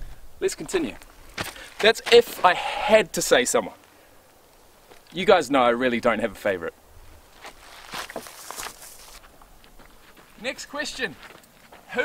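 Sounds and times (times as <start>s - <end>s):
footsteps on rocky dirt trail: 0.0s - 4.0s, 4.8s - 5.2s, 7.0s - 12.0s.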